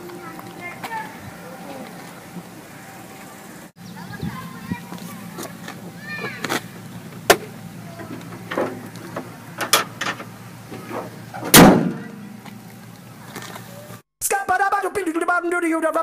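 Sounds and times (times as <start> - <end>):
steady low hum: 0.0 - 14.0
car bonnet slamming shut: 7.2 - 12.3.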